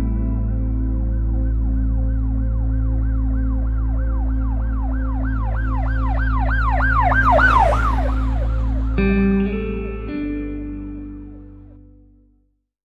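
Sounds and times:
low musical tones: 0.0 - 12.1
siren yelping: 2.7 - 10.3.

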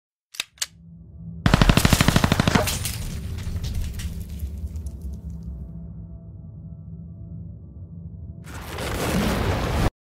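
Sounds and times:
automatic gunfire burst: 1.5 - 2.8.

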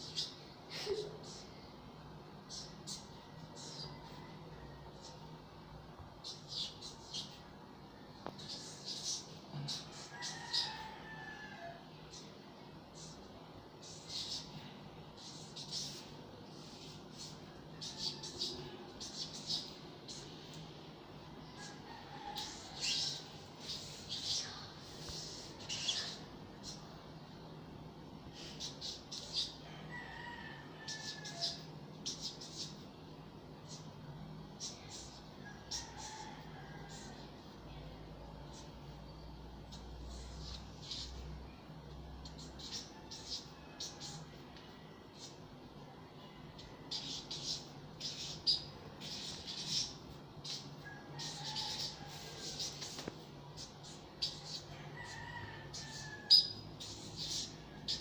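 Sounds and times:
steady low hum: 0.0 - 58.0
faint rooster crow: 2.5 - 5.6, 6.2 - 12.3, 16.8 - 20.6, 21.4 - 27.2, 28.3 - 32.8, 34.6 - 58.0
marker squeaking on whiteboard: 15.2 - 20.2, 22.4 - 26.8, 30.9 - 32.8, 39.7 - 41.2, 46.9 - 58.0
marker squeaking on paper: 51.2 - 58.0.

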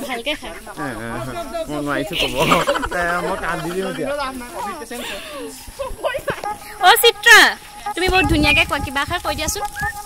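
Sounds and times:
young people talking: 0.0 - 10.0.

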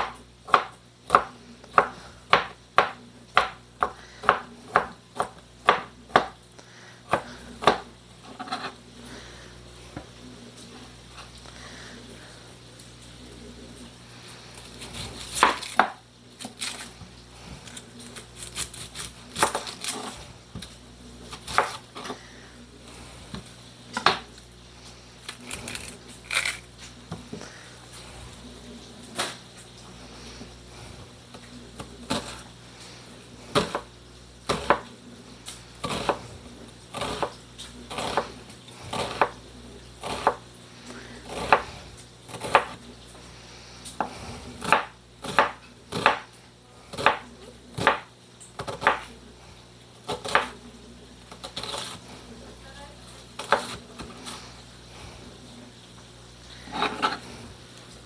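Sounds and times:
knife chopping on plastic board: 0.0 - 6.4, 7.1 - 8.6, 40.0 - 40.4, 42.3 - 42.8, 44.0 - 46.3, 46.9 - 47.2, 47.8 - 49.1, 50.1 - 50.5.

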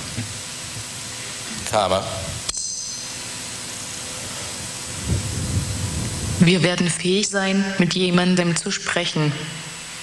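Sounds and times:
steady hiss: 0.0 - 10.0
low rumble: 4.9 - 6.7.

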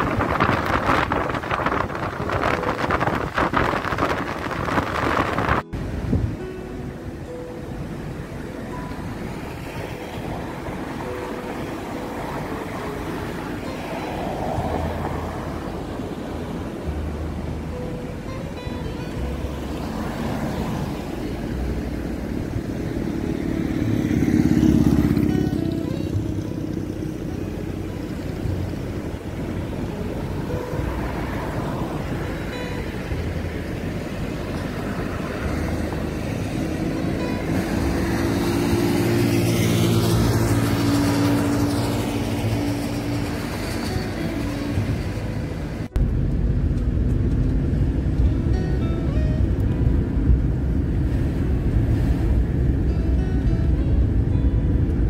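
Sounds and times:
passing vehicle: 0.0 - 55.0
road noise from moving car: 0.0 - 55.0
vehicle engine: 0.0 - 55.0
background music: 5.7 - 55.0.

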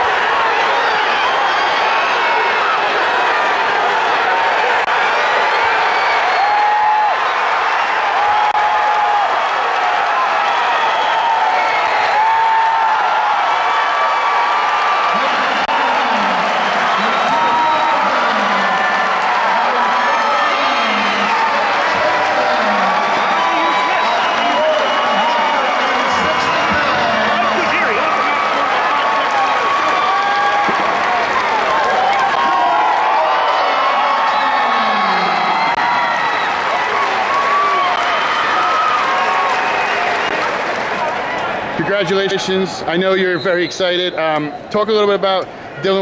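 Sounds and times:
applause: 0.0 - 42.3
crowd cheering and shouting: 0.0 - 46.0.

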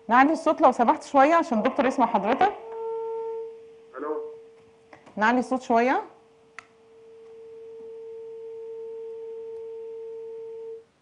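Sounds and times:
telephone line tone: 1.3 - 4.6, 6.9 - 10.9.

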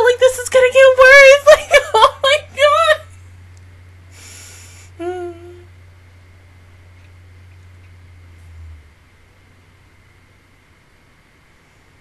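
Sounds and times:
steady low hum: 0.0 - 12.0
woman breathing out through nose: 4.1 - 5.0
woman humming briefly: 4.9 - 5.7.

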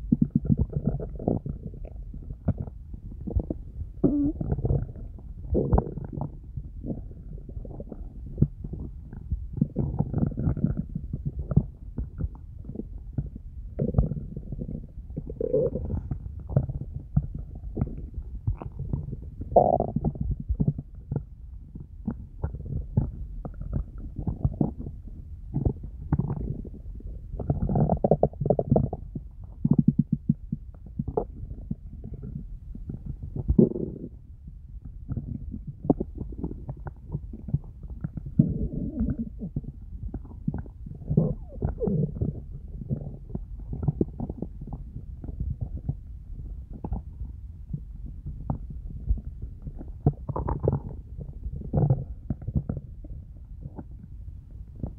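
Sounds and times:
stomach growling and gurgling: 0.0 - 54.9.

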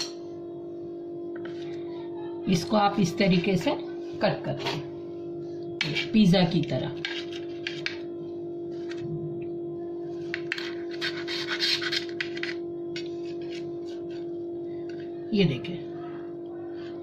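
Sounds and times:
knife and fork scraping plate: 5.8 - 8.0, 10.2 - 14.3.

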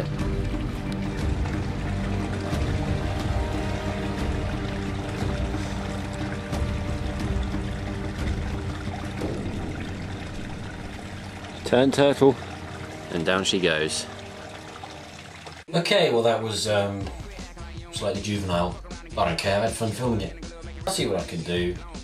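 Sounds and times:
background music with held notes: 0.0 - 22.0.

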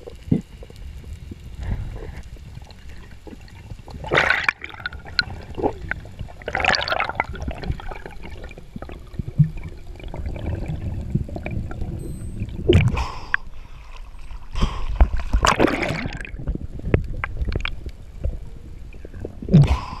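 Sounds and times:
underwater rumble of moving water: 0.0 - 20.0
water gurgling and swishing: 0.0 - 20.0.

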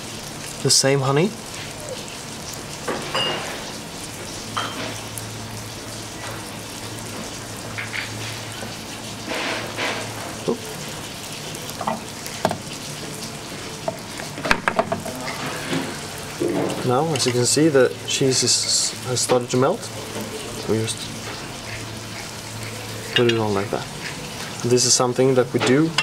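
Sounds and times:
cheese sizzling and crackling: 0.0 - 26.0.

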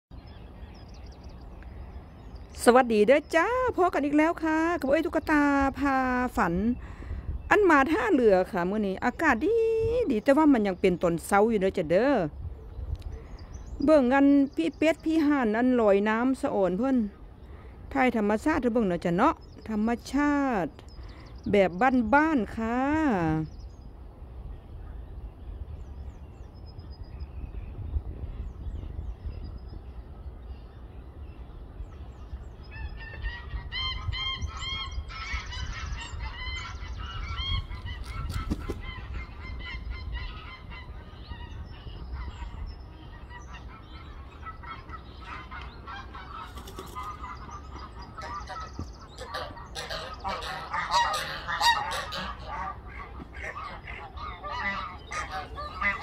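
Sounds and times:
geese honking: 32.8 - 56.0.

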